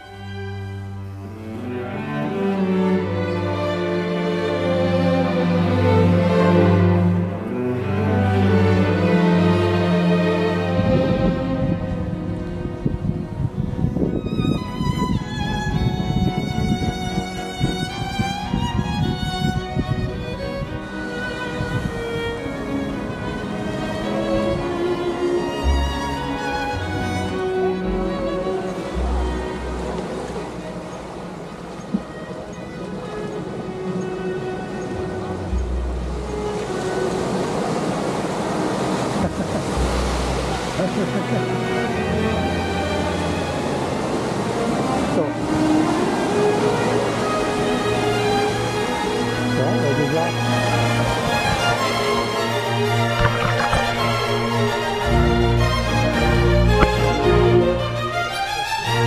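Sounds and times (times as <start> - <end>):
held string notes: 0.0 - 59.0
wind buffeting microphone: 10.6 - 42.2, 50.1 - 59.0
waves on pebble shore: 36.2 - 42.2, 42.8 - 59.0.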